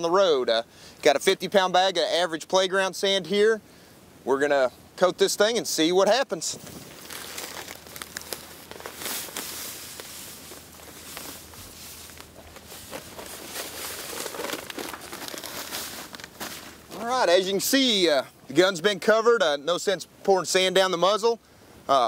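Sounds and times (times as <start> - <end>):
sand pouring hiss: 6.5 - 17.1
plastic bag crinkling: 6.6 - 17.2.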